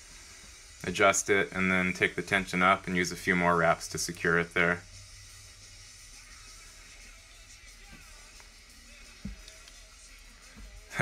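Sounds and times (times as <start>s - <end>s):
faint background music: 0.0s - 11.0s
steady low hum: 0.0s - 11.0s.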